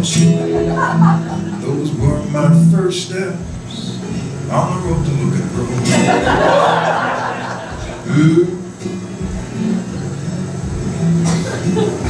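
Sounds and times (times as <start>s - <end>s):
low bass notes: 0.0s - 11.9s
acoustic guitar playing: 0.0s - 12.0s.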